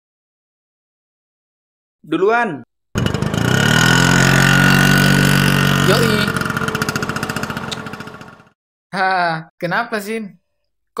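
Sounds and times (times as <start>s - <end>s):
scooter engine pulling away: 3.0s - 8.6s.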